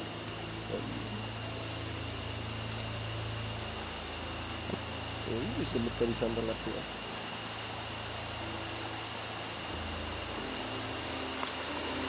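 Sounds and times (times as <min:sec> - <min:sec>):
crickets chirping: 0:00.0 - 0:12.0
low steady hum: 0:00.0 - 0:12.0.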